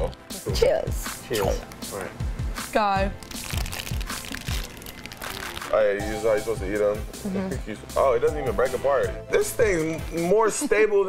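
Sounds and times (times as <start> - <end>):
background music with steady beat: 0.0 - 11.0
biscuit crunching while chewed: 3.2 - 5.8.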